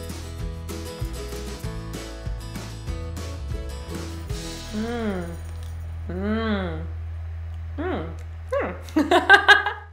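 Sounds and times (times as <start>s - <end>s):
woman humming mmm: 4.6s - 5.5s, 6.1s - 7.0s, 7.8s - 8.7s
low electrical hum: 4.6s - 9.9s.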